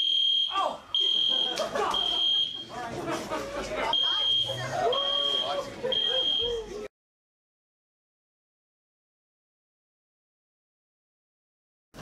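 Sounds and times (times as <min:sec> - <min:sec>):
pulsing fire alarm tone: 0:00.0 - 0:02.6, 0:04.0 - 0:06.5.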